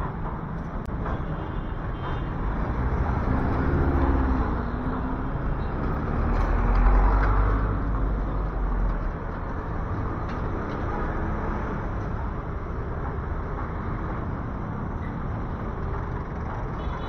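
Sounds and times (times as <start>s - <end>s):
truck engine rumble: 0.0s - 16.8s
diesel traffic passing: 0.0s - 17.0s.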